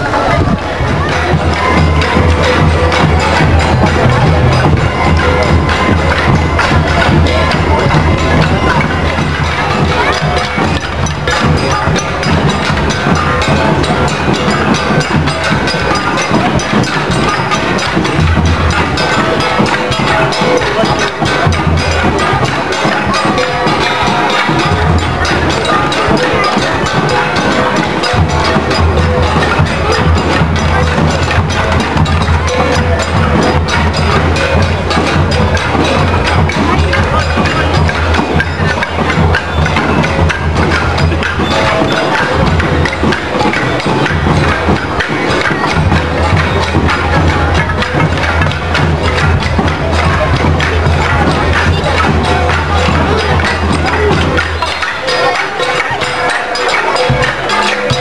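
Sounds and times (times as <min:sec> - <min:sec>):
wooden percussion and drums: 0:00.0 - 0:58.0.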